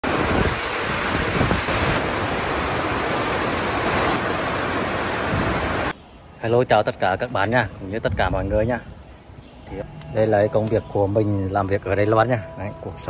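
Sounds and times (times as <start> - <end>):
heavy rain pouring: 0.0 - 5.9.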